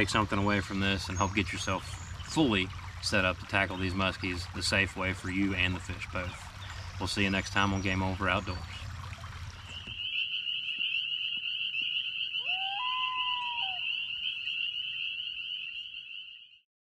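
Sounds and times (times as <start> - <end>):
chorus of calling frogs: 0.0 - 16.6
frog call gliding up in pitch: 9.6 - 16.6.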